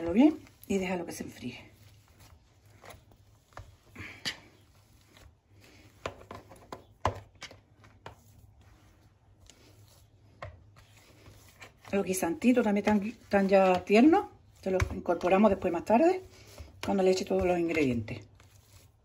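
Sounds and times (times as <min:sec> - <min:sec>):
potato masher mashing in bowl: 0:00.0 - 0:08.6, 0:09.5 - 0:19.0.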